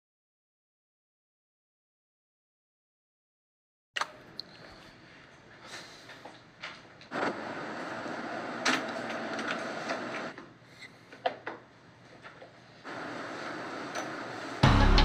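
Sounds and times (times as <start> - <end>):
room noise hiss: 4.1 - 14.6.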